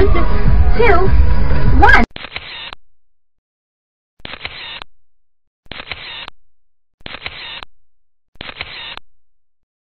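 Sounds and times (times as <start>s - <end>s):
camera shutter sound effect: 2.1s - 2.8s, 4.2s - 4.9s, 5.7s - 6.3s, 7.0s - 7.7s, 8.4s - 9.0s.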